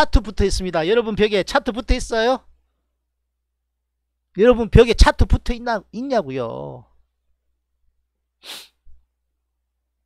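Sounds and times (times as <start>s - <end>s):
man's sharp breath: 8.4s - 9.0s.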